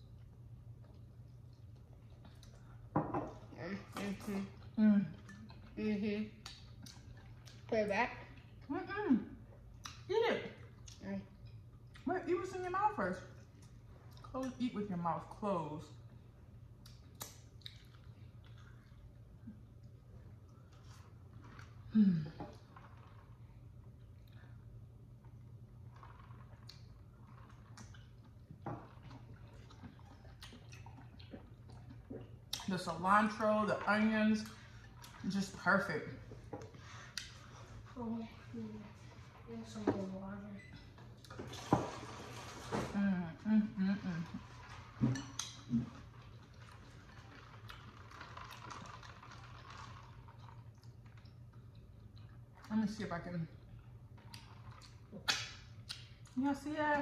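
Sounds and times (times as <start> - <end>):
soft chewing: 0.0 - 8.7, 9.3 - 12.1, 13.2 - 14.6, 16.0 - 32.7, 44.2 - 52.7, 53.5 - 56.4
low room hum: 0.0 - 57.0.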